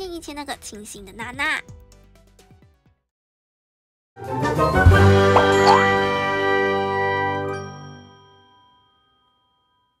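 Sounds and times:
bell-like chime chord: 0:05.4 - 0:06.2, 0:07.5 - 0:10.0.

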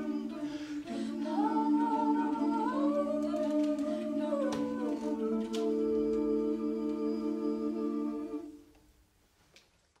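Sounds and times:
a cappella vocal chord: 0:00.0 - 0:08.6.

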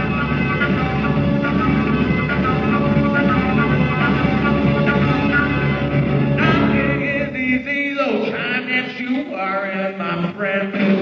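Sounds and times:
live rock band: 0:00.0 - 0:08.4.

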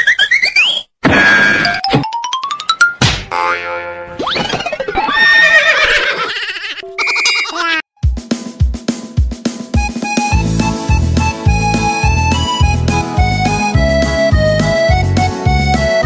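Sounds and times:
cartoon sound effects: 0:00.0 - 0:05.5, 0:06.8 - 0:07.8
music with steady drum beat: 0:08.0 - 0:16.0.

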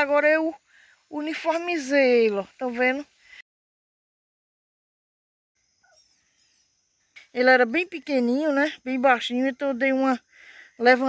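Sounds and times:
faint bird chirps: 0:05.6 - 0:11.0.

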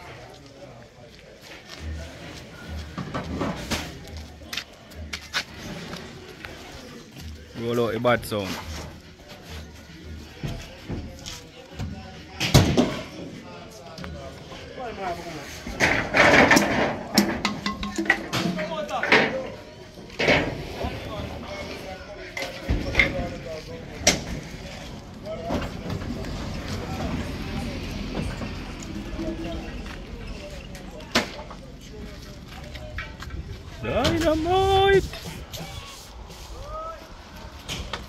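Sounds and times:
voices: 0:00.0 - 0:38.0.

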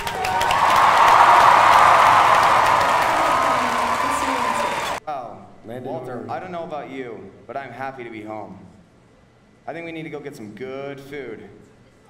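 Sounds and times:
crowd cheering and applauding: 0:00.0 - 0:05.0.

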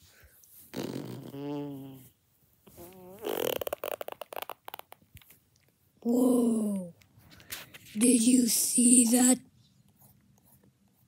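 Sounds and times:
person making mouth sound effects: 0:00.7 - 0:02.1.

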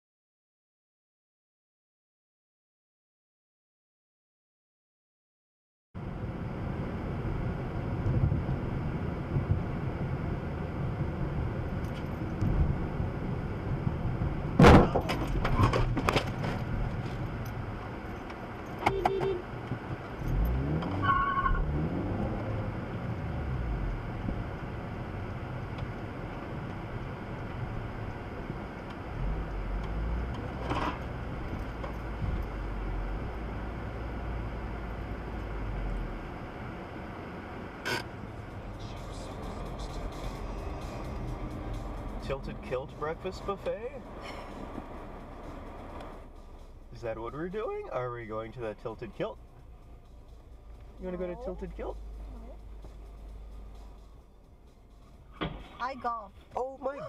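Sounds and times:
road and engine noise inside car: 0:06.0 - 0:57.0.

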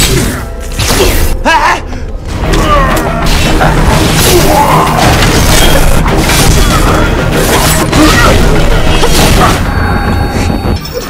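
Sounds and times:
action film music: 0:00.0 - 0:11.0.

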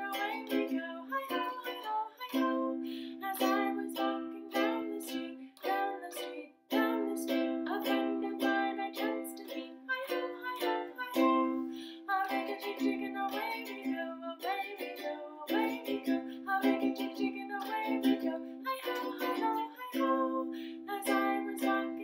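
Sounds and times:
ukulele strummed: 0:00.0 - 0:22.0.

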